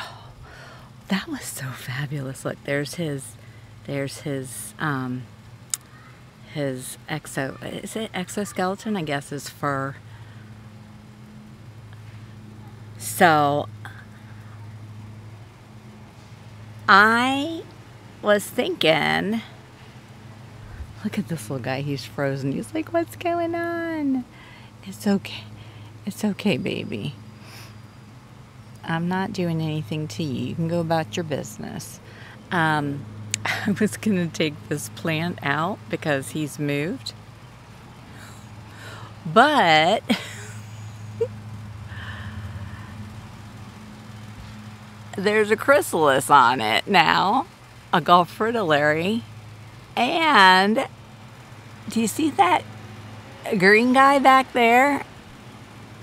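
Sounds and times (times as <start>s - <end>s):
steady low hum: 0.0s - 56.0s
person laughing: 40.1s - 41.3s.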